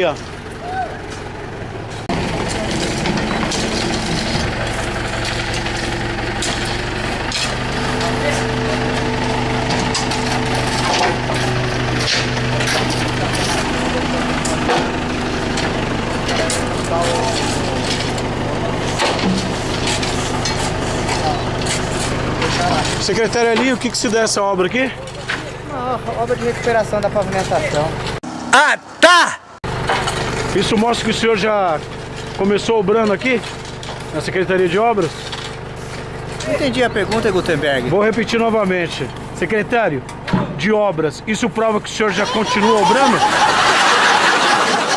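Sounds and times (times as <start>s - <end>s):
tractor engine running: 0.0s - 28.4s, 29.6s - 44.9s
knocks and clatter: 1.9s - 24.3s.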